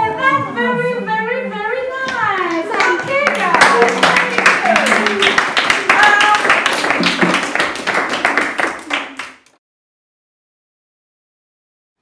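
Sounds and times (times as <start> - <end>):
children clapping: 2.1 - 9.6.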